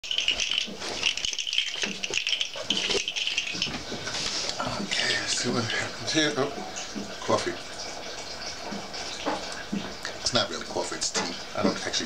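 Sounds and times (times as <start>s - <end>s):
rattling and rustling of handled objects: 0.0s - 4.9s
small clicks and crackles: 0.1s - 4.4s.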